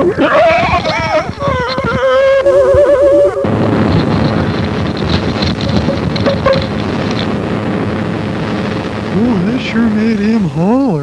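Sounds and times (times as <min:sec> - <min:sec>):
warbling electronic tone: 0:00.0 - 0:10.2
loud steady rushing crackle: 0:00.0 - 0:11.0.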